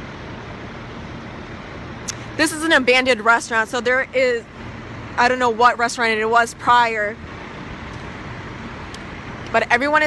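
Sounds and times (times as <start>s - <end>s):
fire truck engines running: 0.0s - 10.0s.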